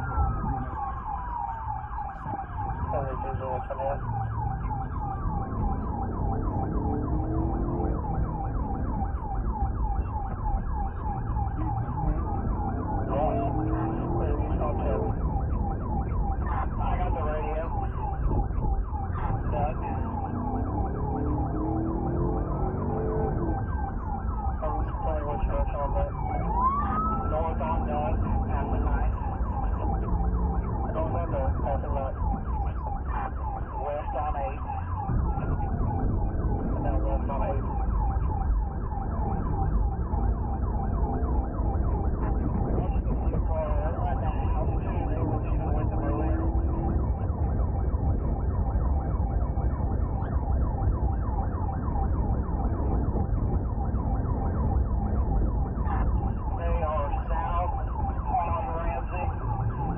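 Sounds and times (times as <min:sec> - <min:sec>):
engine and road rumble: 0:00.0 - 0:59.9
police siren yelping: 0:00.0 - 0:59.9.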